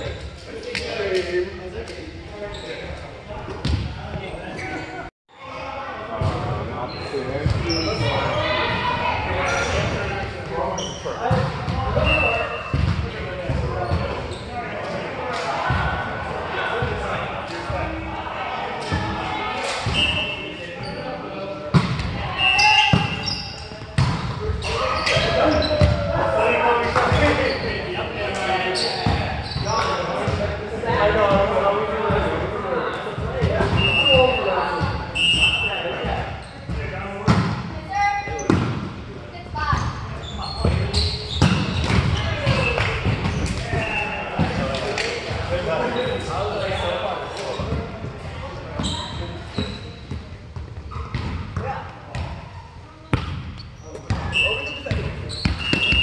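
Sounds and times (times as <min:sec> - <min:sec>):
volleyballs thumping on gym floor: 0:23.8 - 0:24.4, 0:53.1 - 0:54.3.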